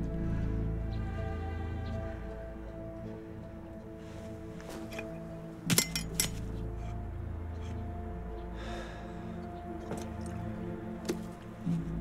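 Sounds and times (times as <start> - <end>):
low drone: 0.0 - 12.0
sharp clinks: 5.7 - 6.4.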